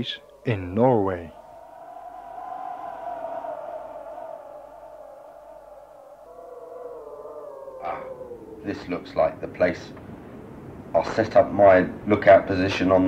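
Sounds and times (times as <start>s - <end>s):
howling wind: 0.0s - 13.0s.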